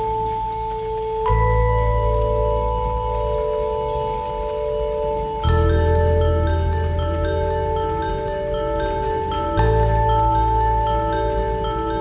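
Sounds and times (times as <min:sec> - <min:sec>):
instrumental interlude music: 0:00.0 - 0:12.0.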